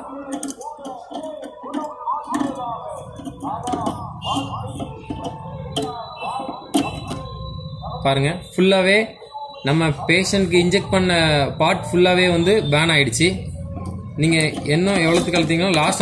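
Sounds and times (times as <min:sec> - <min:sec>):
faint voices: 0:00.0 - 0:16.0.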